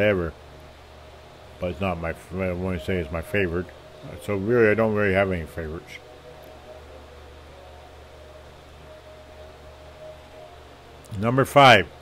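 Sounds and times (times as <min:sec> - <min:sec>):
low hum: 0:00.0 - 0:12.0
thin faint tone: 0:01.4 - 0:12.0.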